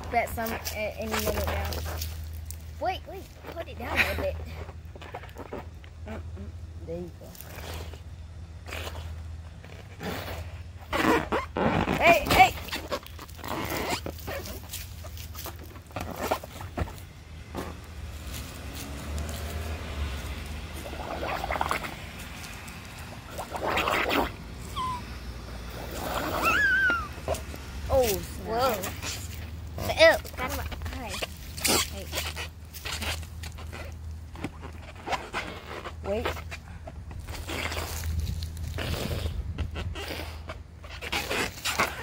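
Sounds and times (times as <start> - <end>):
rubber balloon handled: 7.4 - 18.6, 19.7 - 42.0
breaths blown into balloon: 23.2 - 27.4, 38.7 - 42.0.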